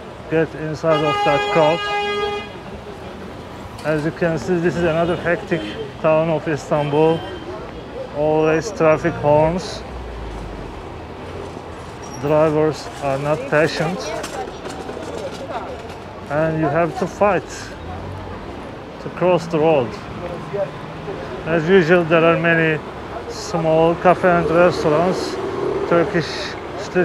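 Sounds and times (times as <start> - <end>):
busy street traffic: 0.0 - 27.0.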